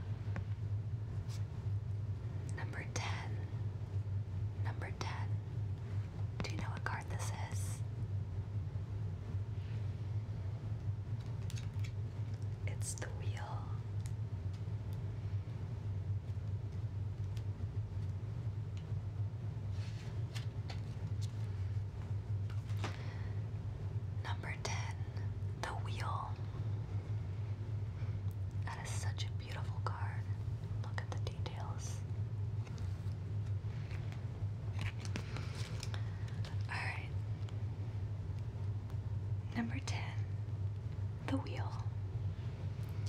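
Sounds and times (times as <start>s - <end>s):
low hum: 0.0s - 43.0s
woman whispering: 2.5s - 3.6s, 4.6s - 5.4s, 6.4s - 7.9s, 12.6s - 14.0s, 24.2s - 26.6s, 28.6s - 32.1s, 36.4s - 37.3s, 39.4s - 40.4s, 41.2s - 42.0s
rustling of cards or paper: 11.2s - 12.5s, 19.7s - 23.1s, 32.6s - 36.7s.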